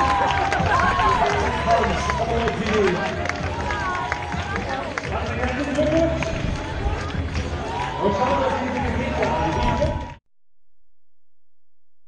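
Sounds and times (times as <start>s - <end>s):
crowd of spectators: 0.0s - 10.2s.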